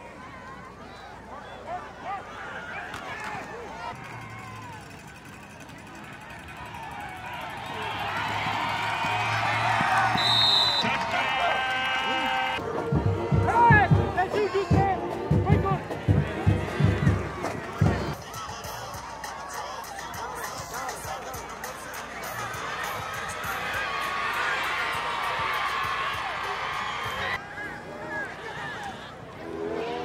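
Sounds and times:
crowd voices: 0.0 - 30.0
music with thumping bass and vocal: 13.0 - 22.6.

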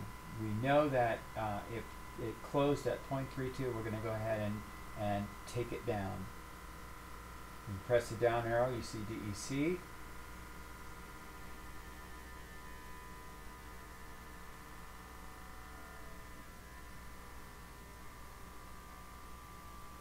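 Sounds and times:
small pump whining: 0.0 - 20.0.

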